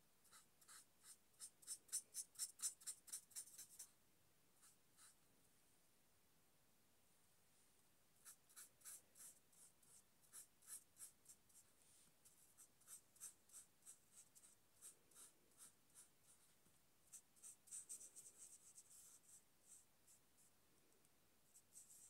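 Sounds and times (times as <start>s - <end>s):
marker pen scratching on paper: 0.3s - 3.9s, 4.6s - 5.2s, 8.2s - 19.8s.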